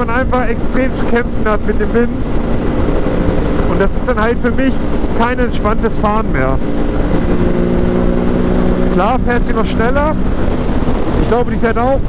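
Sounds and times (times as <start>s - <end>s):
motorcycle engine at high revs: 0.0s - 12.0s
wind rushing over microphone: 0.0s - 12.0s.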